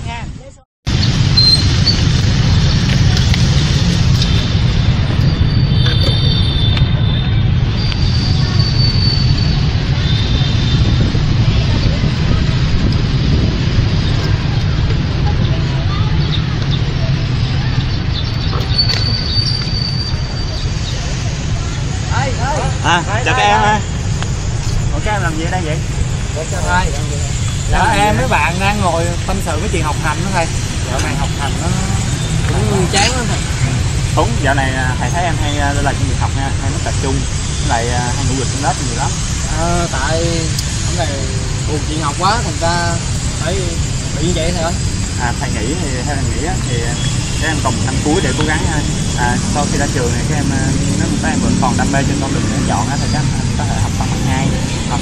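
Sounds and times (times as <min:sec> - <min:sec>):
low rumble of vehicle noise: 0:00.0 - 0:55.0
people talking: 0:05.8 - 0:06.9, 0:14.1 - 0:19.2, 0:20.5 - 0:24.0, 0:24.6 - 0:55.0.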